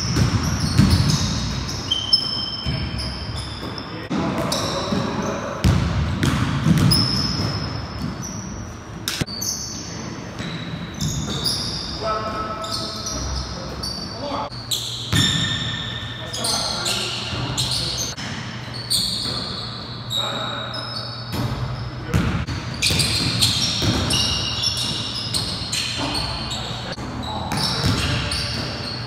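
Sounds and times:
sneaker squeaks: 0.0 - 29.0
basketball bouncing on hardwood: 5.6 - 7.6.

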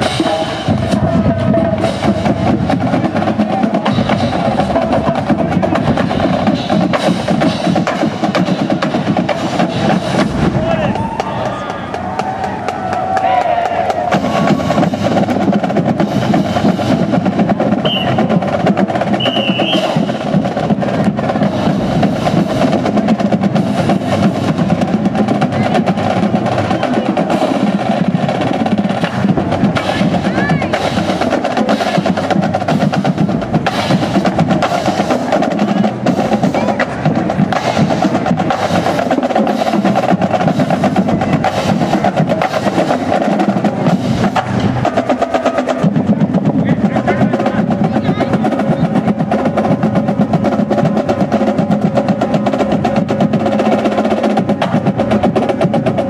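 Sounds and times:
voices shouting: 0.0 - 6.5, 9.4 - 15.6
snare and bass drums beating: 0.0 - 56.0.

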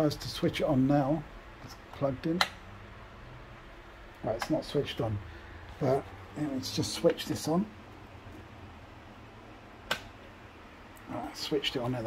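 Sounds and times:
faint steady hum: 0.0 - 12.0
amplifier power switch click: 9.9 - 10.1.

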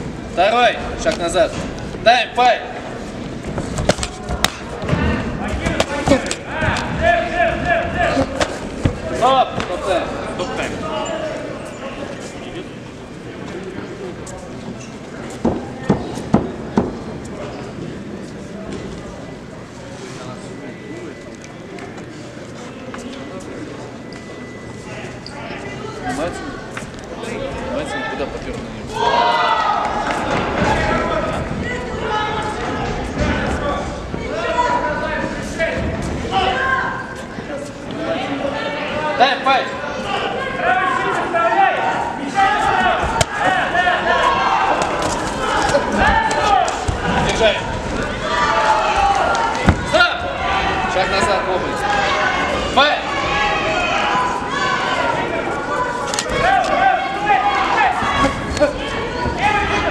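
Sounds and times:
murmur of voices in a hall: 0.0 - 59.9.

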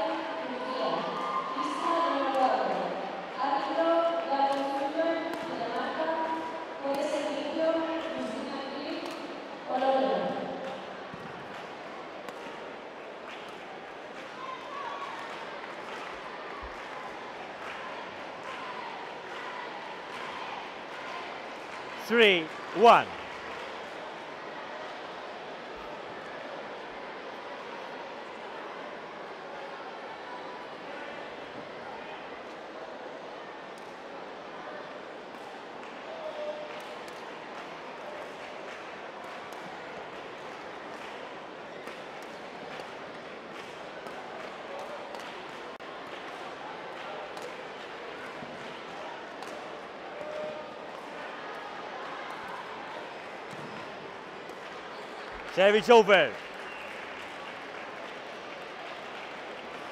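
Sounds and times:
loud shouts dropping in pitch: 22.0 - 23.2, 55.5 - 56.4
voices: 22.0 - 23.2, 55.5 - 56.4.

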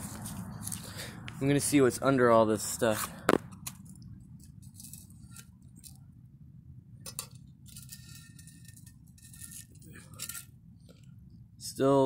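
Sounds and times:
low background rumble: 0.0 - 11.9
scratchy scraping on porcelain: 7.7 - 10.5.

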